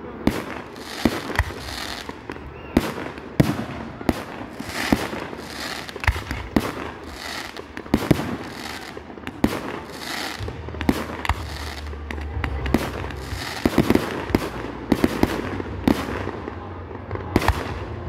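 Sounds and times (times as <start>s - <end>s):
fireworks bursting with bangs: 0.0s - 18.0s.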